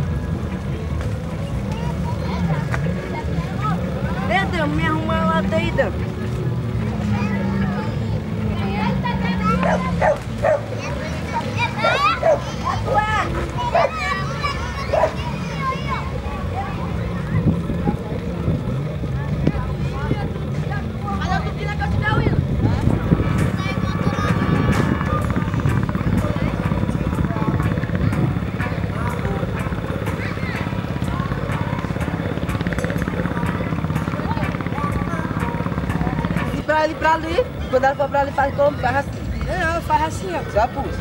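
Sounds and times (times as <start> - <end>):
children's voices: 0.0 - 41.0
music: 19.7 - 41.0.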